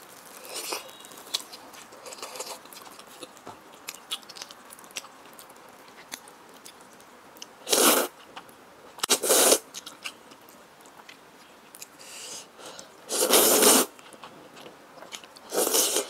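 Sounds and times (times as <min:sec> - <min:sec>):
soft chewing: 0:00.1 - 0:13.3, 0:13.9 - 0:16.0
loud noodle slurp: 0:07.7 - 0:08.1, 0:09.1 - 0:09.6, 0:13.1 - 0:13.9, 0:15.5 - 0:16.0.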